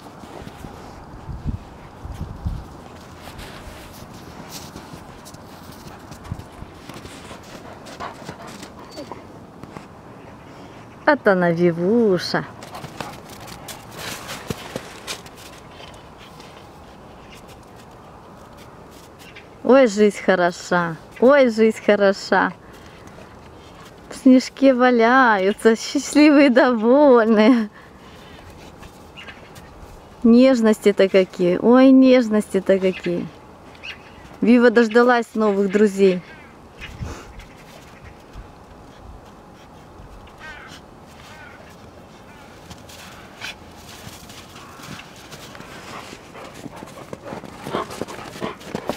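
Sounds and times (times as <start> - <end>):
snow crunching and rustling: 0.0 - 8.3, 12.6 - 19.4, 40.6 - 48.9.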